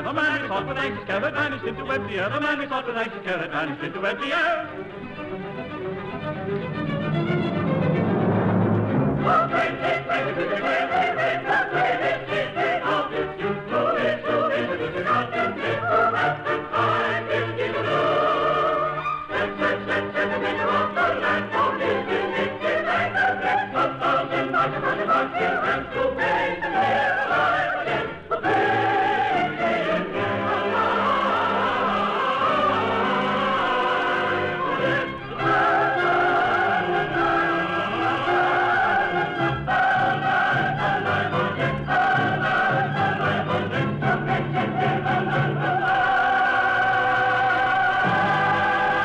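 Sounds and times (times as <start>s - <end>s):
operatic singing with vibrato: 0.0s - 5.0s, 6.2s - 49.0s
orchestral accompaniment: 0.0s - 49.0s.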